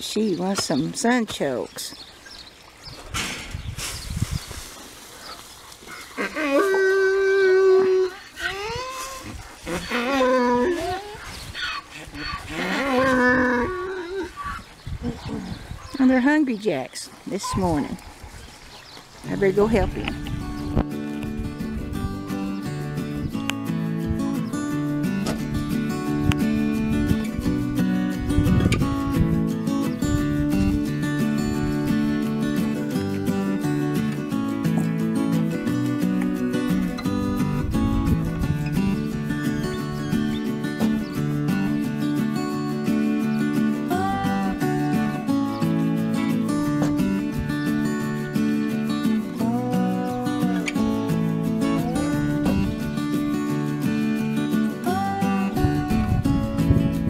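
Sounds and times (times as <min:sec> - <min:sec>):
donkey braying: 0:05.9 - 0:15.9
strummed acoustic guitar: 0:19.3 - 0:57.0.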